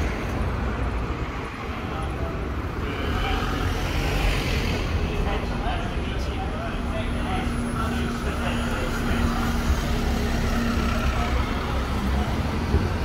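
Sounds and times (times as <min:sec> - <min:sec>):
bus engines running: 0:00.0 - 0:13.0
people talking: 0:01.7 - 0:13.0.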